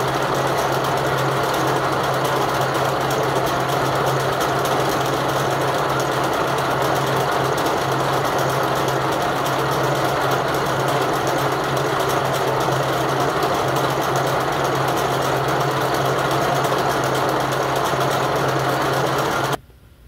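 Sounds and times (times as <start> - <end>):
braiding machine rattling: 0.0 - 19.6
low machine hum: 0.0 - 19.6.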